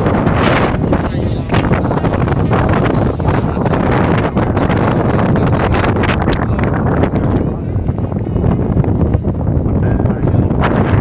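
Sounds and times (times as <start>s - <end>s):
strong wind buffeting microphone: 0.0s - 11.0s.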